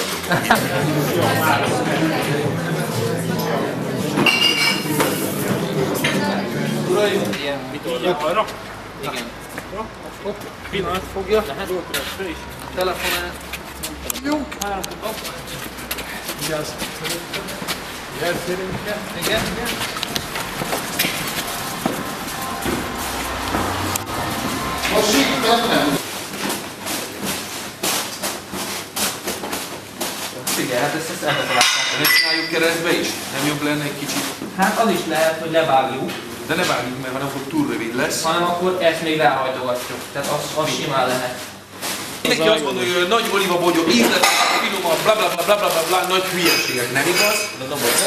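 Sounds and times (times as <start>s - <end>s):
men talking indistinctly: 0.0s - 21.7s, 24.8s - 26.0s, 30.4s - 41.5s, 42.2s - 48.0s
glass or metal clink: 4.2s - 4.9s, 31.3s - 32.6s.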